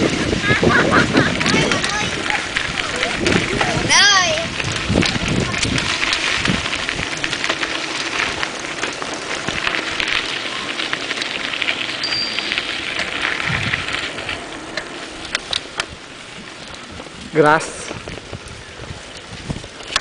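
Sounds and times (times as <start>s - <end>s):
bike rattles and ticks: 0.0s - 20.0s
bike tyres crackling over gravel: 0.0s - 20.0s.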